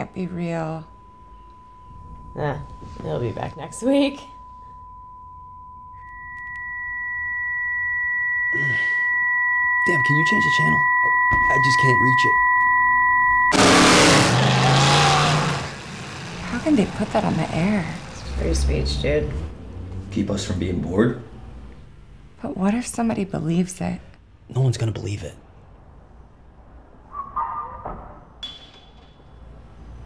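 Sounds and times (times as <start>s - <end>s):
high beep tone: 0.0s - 13.9s
sharp ringing hit: 0.7s - 14.7s
car engines roaring: 13.5s - 22.1s.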